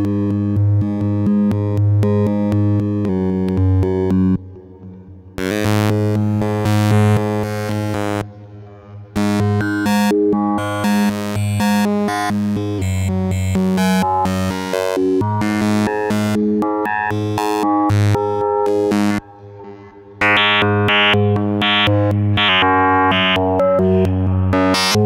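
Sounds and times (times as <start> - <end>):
held low synth tone: 18.9 - 25.0.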